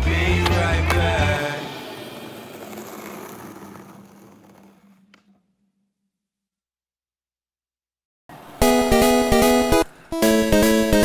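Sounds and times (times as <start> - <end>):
skateboard clacks on asphalt: 1.9 - 5.4.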